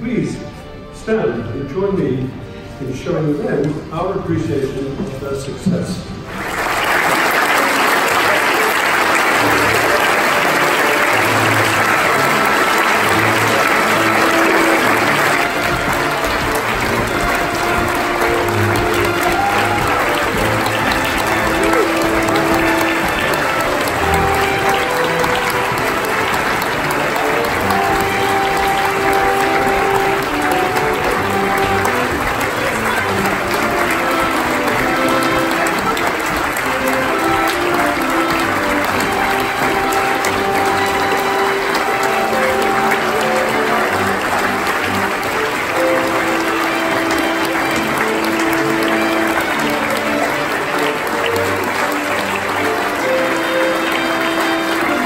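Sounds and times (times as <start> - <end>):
crowd clapping: 5.7 - 55.0
music of long held notes: 6.2 - 55.0.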